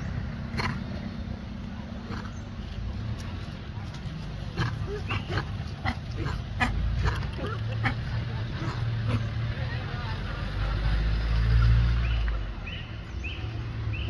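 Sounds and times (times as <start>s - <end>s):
steady low rumble: 0.0s - 10.7s
monkeys squeaking and clicking: 4.6s - 9.4s.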